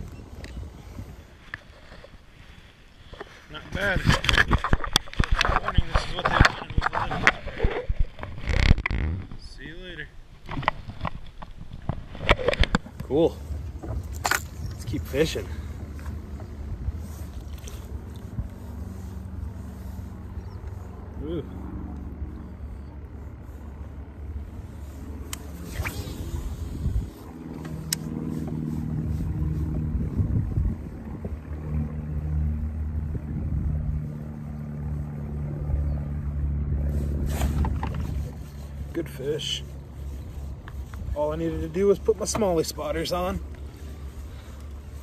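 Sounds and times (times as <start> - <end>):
low wind rumble: 0.0 - 45.0
boat motor humming: 10.2 - 45.0.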